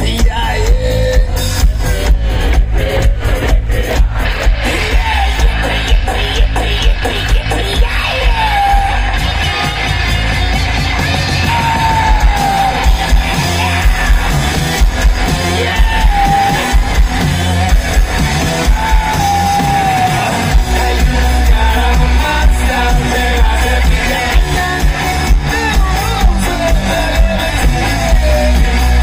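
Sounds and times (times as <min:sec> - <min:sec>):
rock band playing live: 0:00.0 - 0:29.0.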